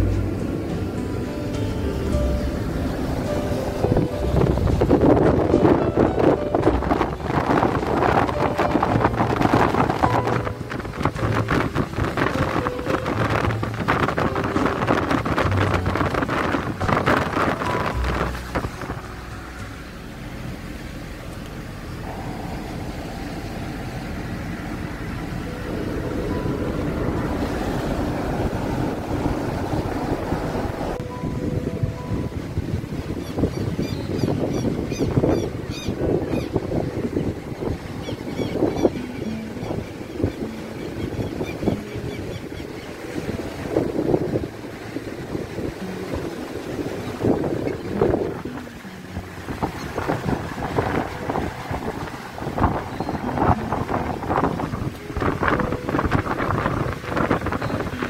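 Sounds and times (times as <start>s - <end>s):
car driving: 0.0s - 58.0s
wind buffeting microphone: 0.0s - 58.0s.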